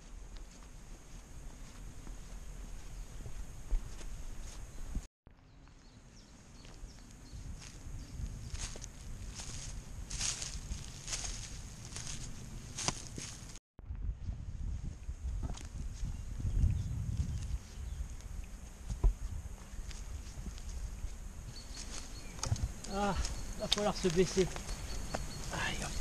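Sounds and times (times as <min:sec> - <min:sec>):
footsteps on a path: 0:00.0 - 0:13.6, 0:14.3 - 0:26.0
footsteps through dry leaves: 0:06.6 - 0:13.6, 0:19.6 - 0:26.0.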